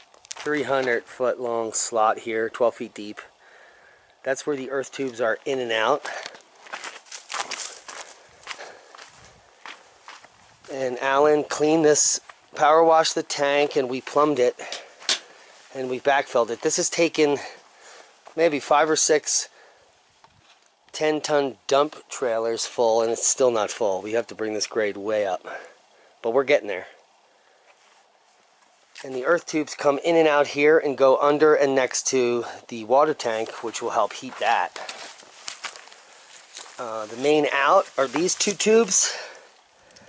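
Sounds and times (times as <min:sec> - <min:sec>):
footsteps on stony dirt: 0:00.0 - 0:01.2, 0:04.9 - 0:12.6, 0:33.0 - 0:40.0.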